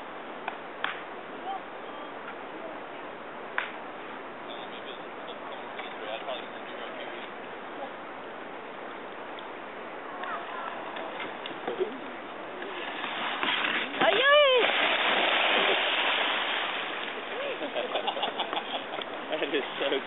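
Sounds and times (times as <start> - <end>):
churning rushing water: 0.0 - 20.0
kayak sliding down dirt bank: 10.0 - 20.0
loud water splash: 12.7 - 17.7.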